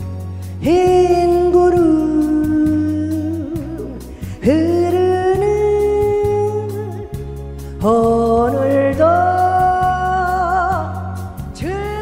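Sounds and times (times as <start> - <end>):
backing track with bass beat: 0.0 - 12.0.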